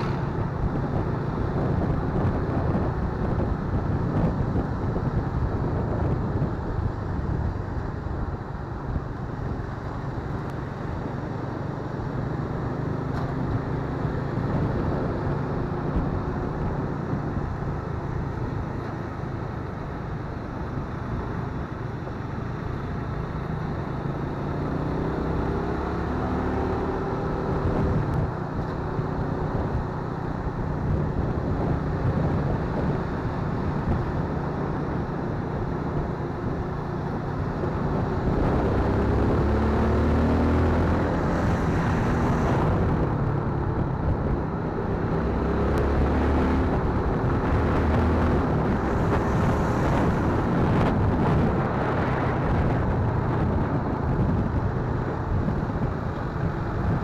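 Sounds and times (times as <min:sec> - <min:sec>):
road and wind noise: 0:00.0 - 0:57.0.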